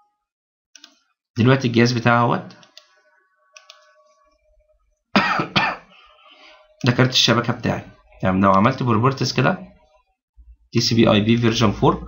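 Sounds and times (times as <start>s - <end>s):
person coughing: 5.2s - 6.2s.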